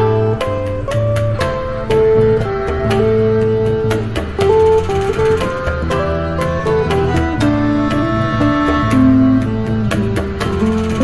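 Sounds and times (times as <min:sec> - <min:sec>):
backing track with bass: 0:00.0 - 0:11.0
electric guitar melody: 0:00.0 - 0:11.0.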